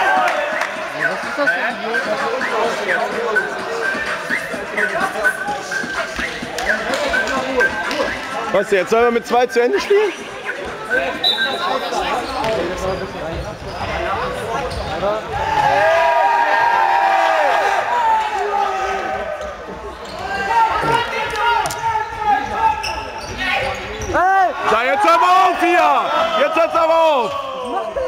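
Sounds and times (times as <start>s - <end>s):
people shouting and calling: 24.1s - 28.0s.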